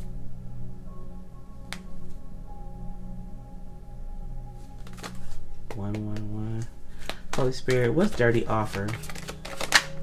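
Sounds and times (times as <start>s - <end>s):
soft music with drone tones: 0.0s - 10.0s.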